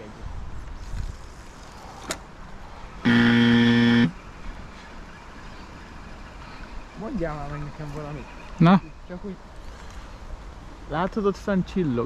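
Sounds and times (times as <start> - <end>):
loud horn-like tone: 3.0 - 4.2.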